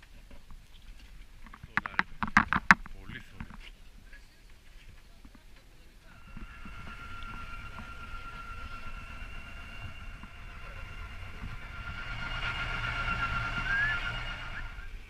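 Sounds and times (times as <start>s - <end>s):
boat engine rumble with whine: 6.0s - 15.0s.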